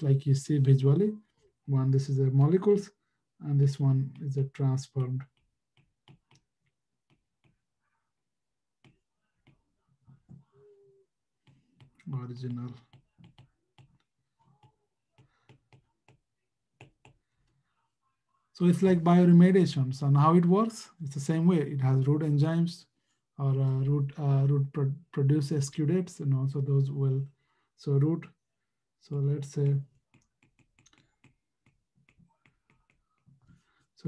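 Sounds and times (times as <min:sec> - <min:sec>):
stylus tapping on tablet screen: 0:04.9 - 0:07.8, 0:08.8 - 0:10.5, 0:11.4 - 0:17.2, 0:29.9 - 0:33.6.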